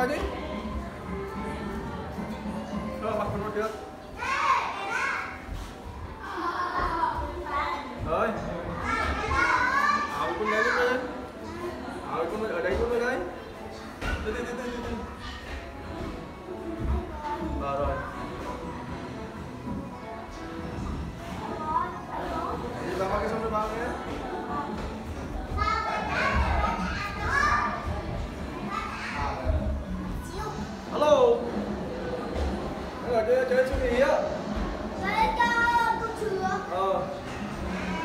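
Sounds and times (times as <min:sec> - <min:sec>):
young children calling and chattering: 0:00.0 - 0:38.0
children talking and calling out: 0:04.0 - 0:08.0, 0:08.7 - 0:12.0, 0:21.4 - 0:22.8, 0:25.2 - 0:30.9, 0:34.9 - 0:38.0.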